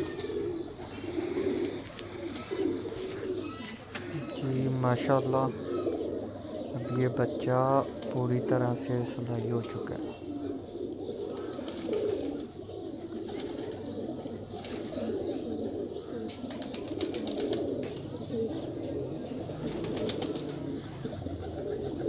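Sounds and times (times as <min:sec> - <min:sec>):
pigeons cooing: 0:00.0 - 0:22.0.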